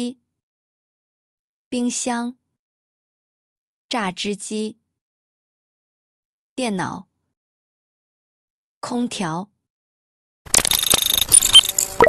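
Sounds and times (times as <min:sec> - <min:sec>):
quick clicks: 0:10.5 - 0:12.0.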